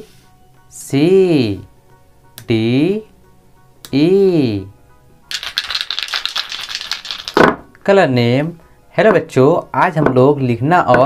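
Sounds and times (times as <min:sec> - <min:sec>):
plastic jars rattling and clicking: 0:05.3 - 0:07.6.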